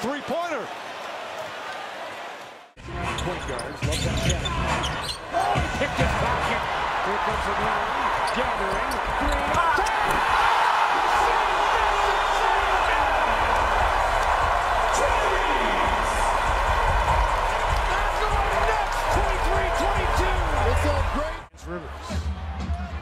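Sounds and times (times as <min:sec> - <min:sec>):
crowd cheering: 0:00.0 - 0:02.8, 0:04.6 - 0:23.0.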